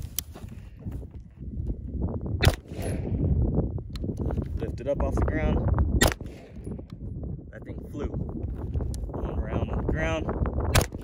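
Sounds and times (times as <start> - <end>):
gunshot: 2.4 - 3.2, 6.0 - 6.6.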